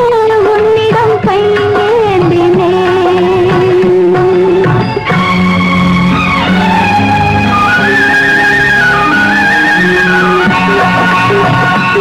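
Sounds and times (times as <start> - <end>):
instrumental film song melody: 0.0 - 12.0.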